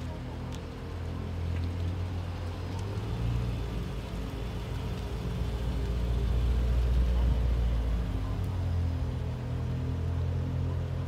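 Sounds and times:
car exhaust rumble: 0.0s - 11.0s.

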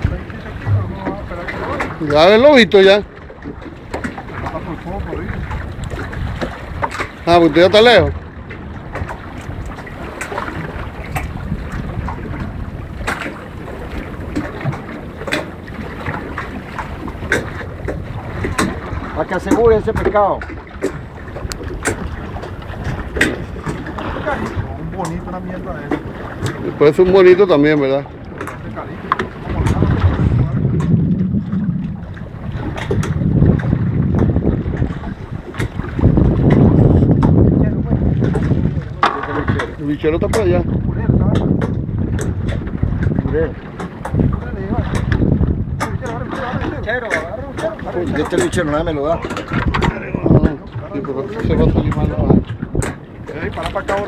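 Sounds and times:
short splashes and knocks: 0.0s - 54.0s
water slapping boat hull: 0.0s - 54.0s
wind noise on microphone: 0.0s - 54.0s.

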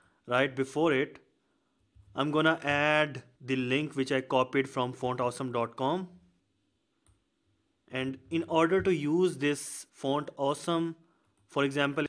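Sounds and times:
person speaking: 0.3s - 1.2s, 2.1s - 6.2s, 7.9s - 12.0s.

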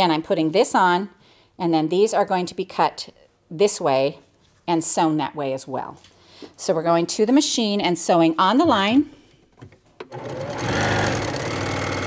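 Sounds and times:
sewing machine stitching: 10.0s - 12.0s.

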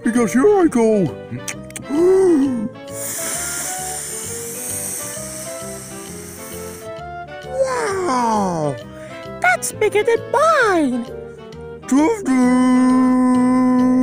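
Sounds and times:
light background music: 0.0s - 14.0s
bubble inflating hiss: 2.9s - 7.3s.

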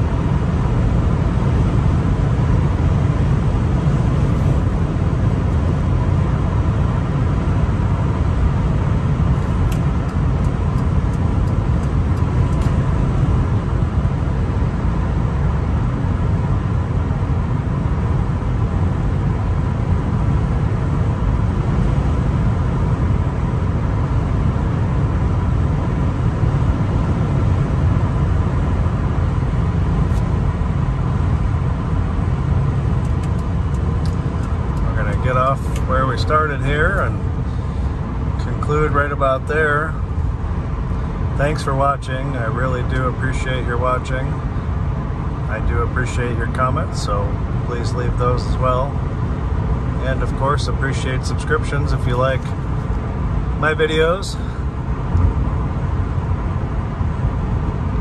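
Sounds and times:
tyre and engine rumble: 0.0s - 58.0s.

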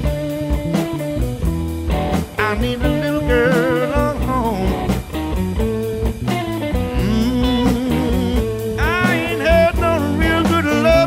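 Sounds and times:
electric blues band playing: 0.0s - 11.0s
electric guitar: 0.0s - 11.0s.

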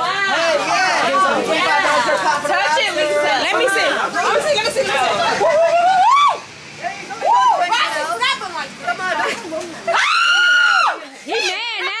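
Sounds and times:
excited chatter of voices: 0.0s - 12.0s.

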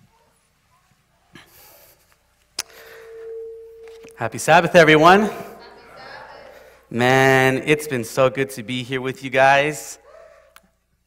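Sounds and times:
faint ringing tone: 2.7s - 4.3s.

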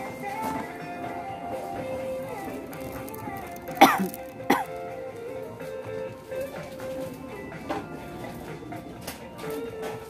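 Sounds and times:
music with held tones: 0.0s - 10.0s
person coughing: 3.7s - 4.8s.

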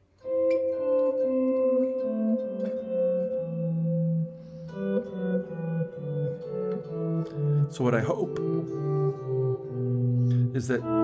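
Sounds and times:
clean electric guitar scale: 0.2s - 11.0s.

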